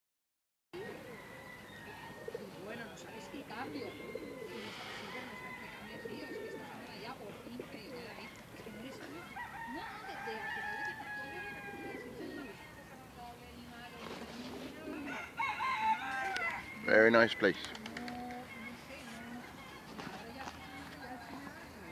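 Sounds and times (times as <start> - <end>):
pigeons cooing: 0.8 - 12.9, 13.9 - 20.4.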